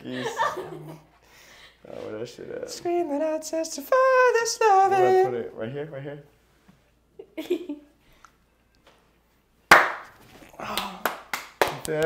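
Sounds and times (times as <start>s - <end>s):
people laughing: 0.0s - 1.1s
hand claps: 9.7s - 12.0s.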